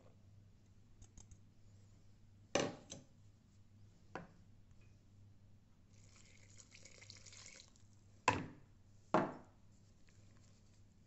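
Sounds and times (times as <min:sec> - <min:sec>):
liquid pouring into batter: 0:05.9 - 0:07.9.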